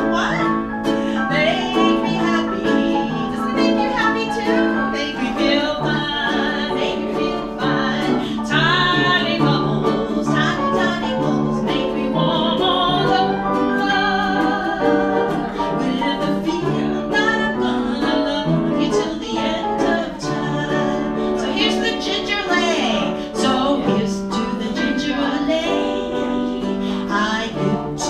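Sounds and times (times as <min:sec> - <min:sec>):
grand piano: 0:00.0 - 0:28.0
strummed ukulele: 0:00.0 - 0:28.0
woman singing: 0:00.0 - 0:28.0.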